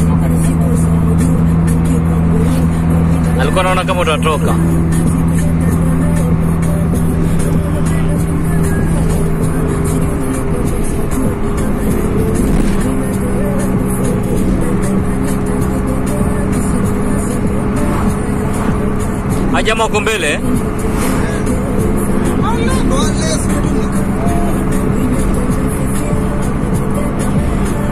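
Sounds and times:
car engine and road noise: 0.0 - 27.9
music from car stereo: 0.0 - 27.9.

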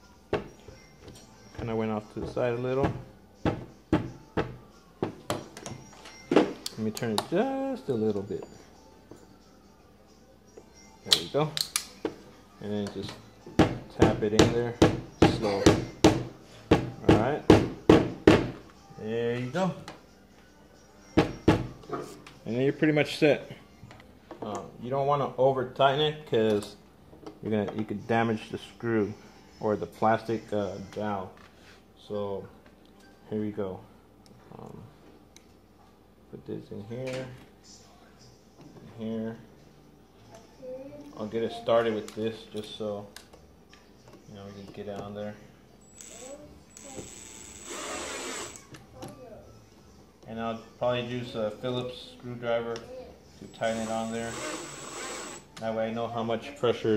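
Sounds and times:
cordless drill driving a screw: 45.9 - 48.6, 53.7 - 55.5.

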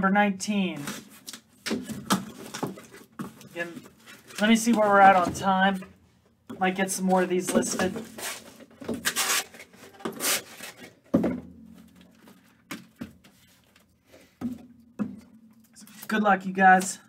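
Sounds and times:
cardboard boxes rustling and sliding: 7.6 - 10.9.

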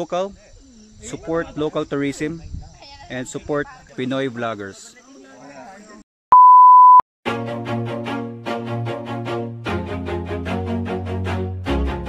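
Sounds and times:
electronic beep: 6.3 - 7.0
music: 7.3 - 12.0.

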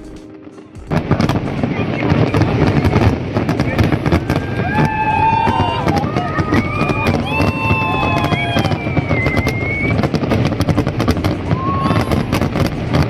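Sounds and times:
fireworks crackling and banging: 0.0 - 13.0
fireworks whistling: 0.0 - 13.0.

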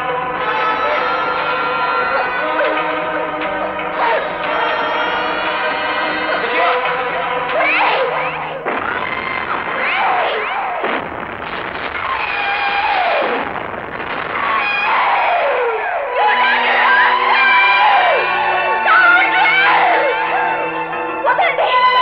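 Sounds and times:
crowd shouting and screaming: 0.0 - 10.9, 11.9 - 13.4, 14.2 - 22.0
dramatic background music: 11.6 - 22.0.

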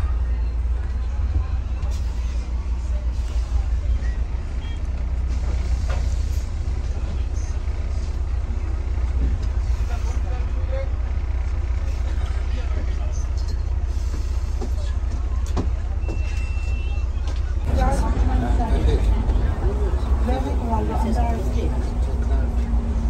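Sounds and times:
bus engine rumble: 0.0 - 23.0
murmur of voices: 6.8 - 23.0.

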